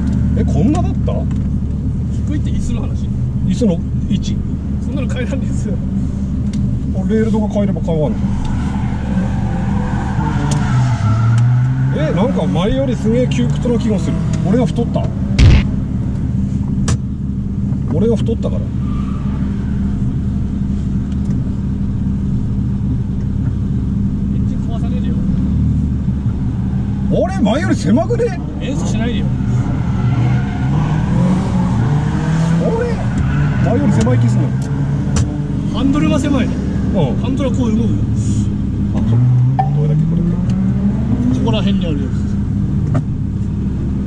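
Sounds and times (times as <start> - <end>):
car engine idling: 0.0 - 31.8, 32.8 - 39.0.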